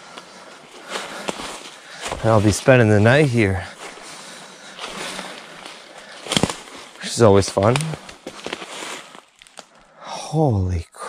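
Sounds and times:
footsteps through dry leaves: 0.6s - 9.7s.

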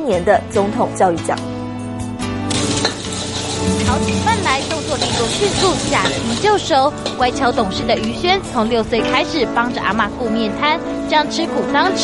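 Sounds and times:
food sizzling in a wok: 2.5s - 7.6s
spatula stir-frying: 2.5s - 7.6s.

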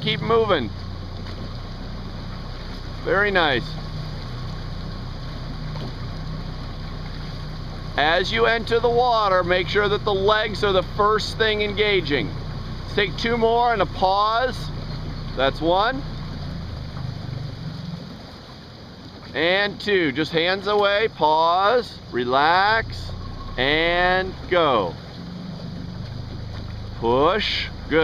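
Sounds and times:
boat engine humming: 0.0s - 28.0s
faint water wash: 0.0s - 28.0s.

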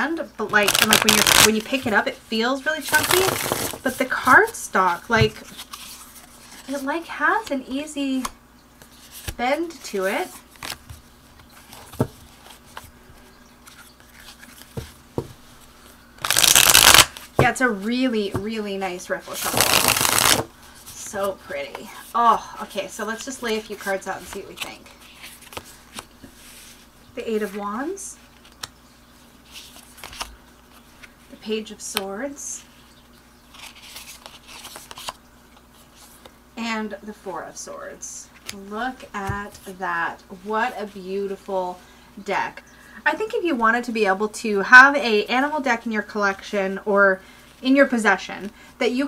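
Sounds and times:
card deck riffle shuffle: 0.5s - 2.1s, 2.8s - 7.5s, 13.6s - 18.4s, 19.2s - 21.9s
cards rustling and sliding: 0.6s - 1.9s, 2.8s - 6.9s, 13.6s - 15.0s, 15.6s - 17.4s, 19.4s - 20.5s, 23.2s - 26.9s, 29.5s - 31.1s, 33.5s - 35.2s.

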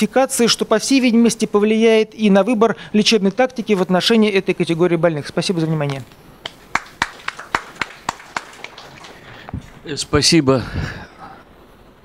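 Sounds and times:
sparse hand claps: 6.4s - 9.6s.

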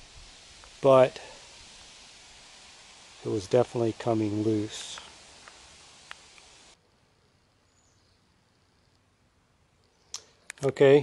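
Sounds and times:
faint background noise: 0.0s - 11.0s
small click: 9.8s - 10.7s.

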